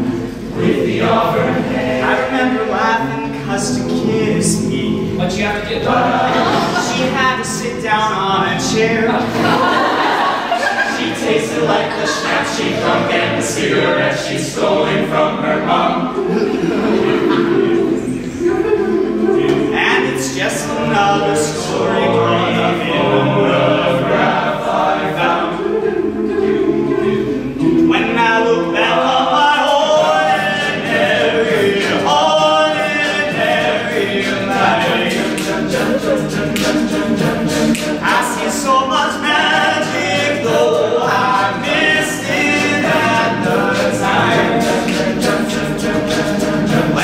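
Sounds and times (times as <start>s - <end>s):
men singing a cappella harmony: 0.0s - 47.0s.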